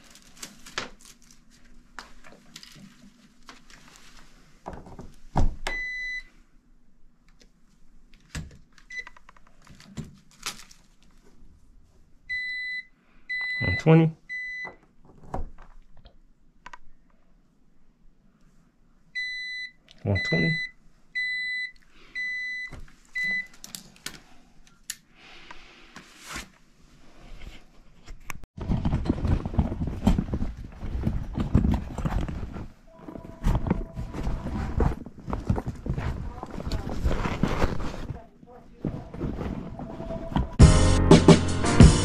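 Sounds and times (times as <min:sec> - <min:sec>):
rustling and knocking handling noise: 0:01.5 - 0:05.8, 0:27.4 - 0:40.6.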